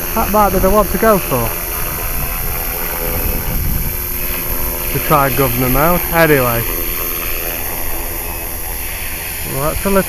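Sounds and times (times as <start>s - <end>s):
rc helicopter rotor whirring: 0.0s - 10.0s
wind rumbling on microphone: 0.0s - 10.0s.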